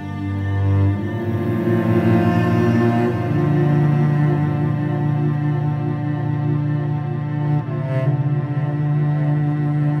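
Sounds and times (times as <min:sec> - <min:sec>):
slow ambient cello music: 0:00.0 - 0:10.0.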